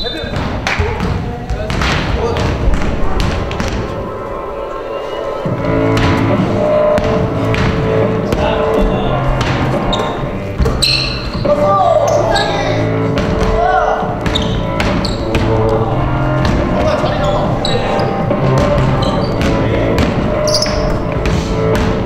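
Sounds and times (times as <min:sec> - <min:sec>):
voices: 0:00.0 - 0:21.1
music with sustained notes: 0:02.9 - 0:22.0
basketball bouncing on hardwood floor: 0:13.2 - 0:15.6, 0:18.4 - 0:22.0.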